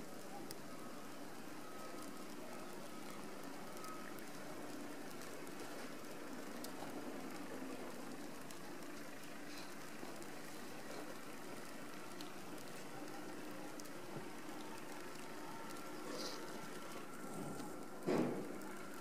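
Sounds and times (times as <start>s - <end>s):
faint ticks: 2.0s - 17.9s.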